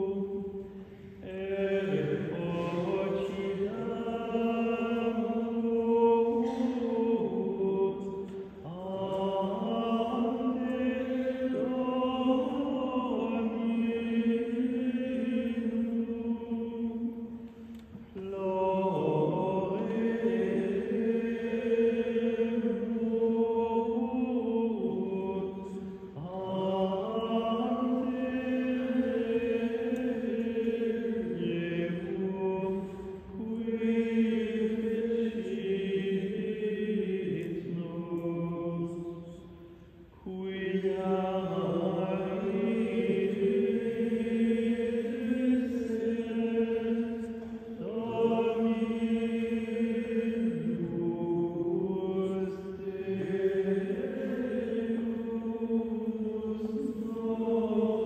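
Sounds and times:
men's choir chanting: 0:01.2 - 0:17.3, 0:18.2 - 0:39.5, 0:40.2 - 0:58.0.

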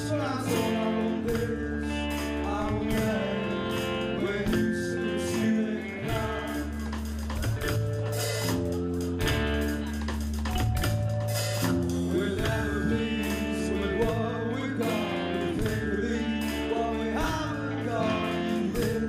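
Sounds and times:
person singing: 0:00.0 - 0:10.2, 0:11.4 - 0:19.0
bass line: 0:00.0 - 0:19.0
drum kit: 0:00.0 - 0:19.0
electric guitar: 0:00.0 - 0:19.0.

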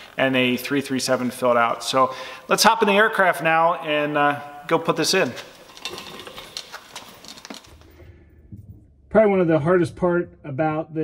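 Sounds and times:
light rustling of hardware bags: 0:05.0 - 0:08.0
low hum: 0:07.7 - 0:11.0.

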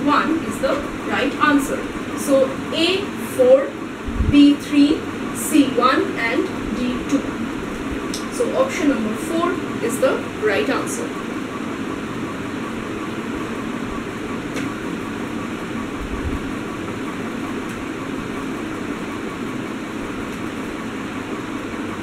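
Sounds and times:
steady background noise: 0:00.0 - 0:22.0.

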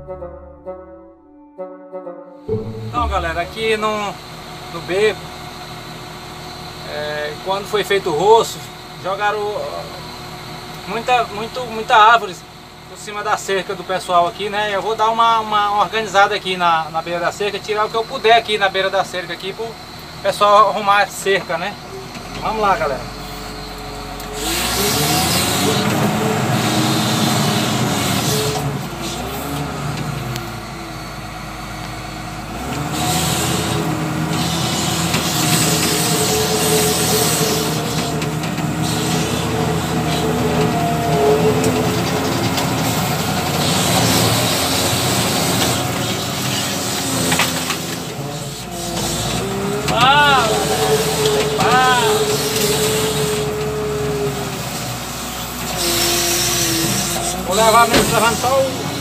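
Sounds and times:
rising and falling whines: 0:00.0 - 0:06.8
diesel engine revving: 0:02.5 - 0:59.0.

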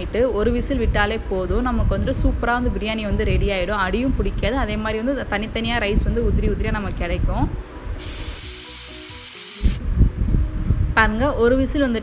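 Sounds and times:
pressure cooker steam hiss: 0:08.0 - 0:09.8.

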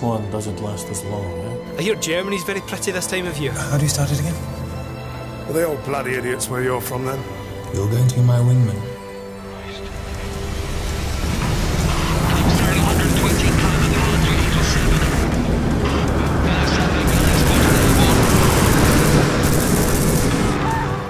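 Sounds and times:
music: 0:00.0 - 0:21.0
aircraft engines roaring: 0:09.7 - 0:21.0.

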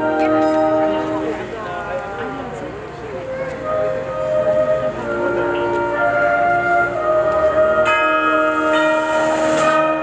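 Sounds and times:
concert band sustained chords: 0:00.0 - 0:10.0.

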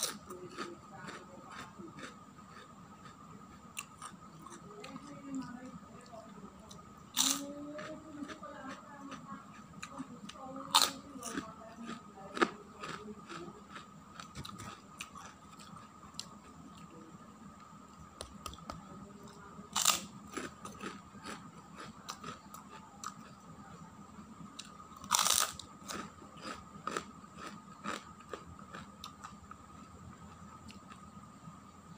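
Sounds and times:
crunching crisp crackers: 0:00.0 - 0:31.9.

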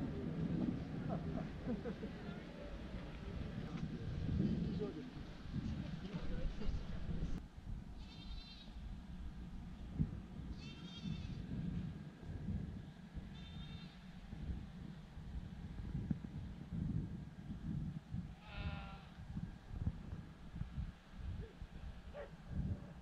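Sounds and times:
wind rumbling on microphone: 0:00.0 - 0:23.0
livestock bleating: 0:08.0 - 0:08.8, 0:10.6 - 0:11.4, 0:13.4 - 0:14.0, 0:18.4 - 0:19.2.

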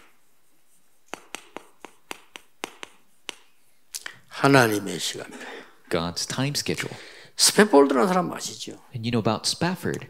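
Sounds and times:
chalk tapping on chalkboard: 0:00.0 - 0:03.6.

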